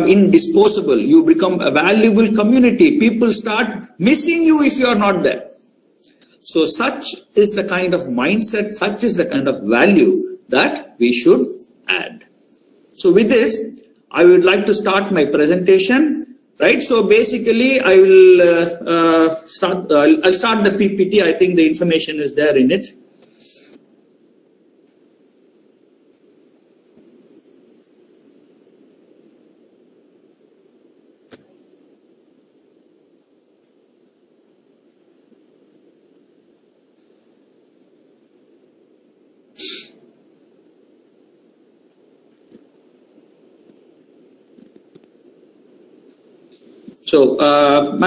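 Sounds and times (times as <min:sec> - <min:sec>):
open microphone hiss: 0:00.0 - 0:48.0
loud burst of noise: 0:39.5 - 0:40.0.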